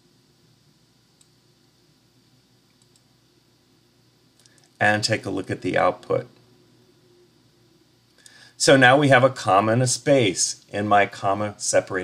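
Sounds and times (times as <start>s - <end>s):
computer mouse clicks: 1.2s - 1.4s, 2.7s - 3.1s, 4.4s - 4.8s.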